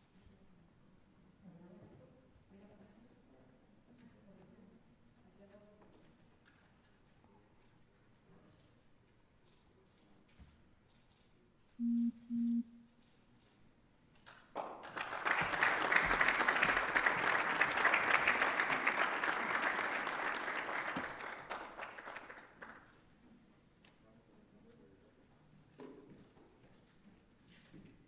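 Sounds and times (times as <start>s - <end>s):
low electronic beeps: 11.8s - 13.0s
audience applauding: 14.5s - 22.9s.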